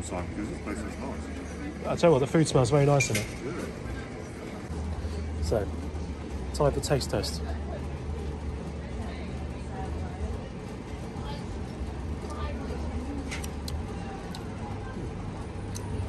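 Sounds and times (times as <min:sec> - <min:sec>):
faint indistinct voices: 0:00.0 - 0:16.0
steady low rumble: 0:00.0 - 0:16.0.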